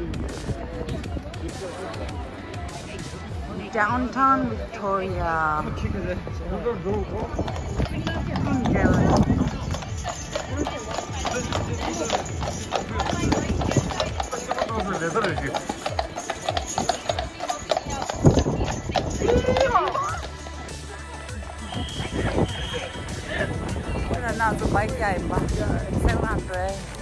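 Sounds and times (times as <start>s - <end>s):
hooves clip-clopping on pavement: 0.0s - 27.0s
music: 0.0s - 27.0s
voices: 0.0s - 27.0s.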